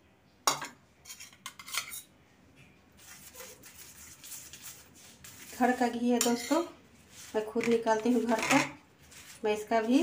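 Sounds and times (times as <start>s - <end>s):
spoon scraping: 1.0s - 2.1s, 3.0s - 10.0s
spoon clinking against steel bowl: 6.2s - 6.7s.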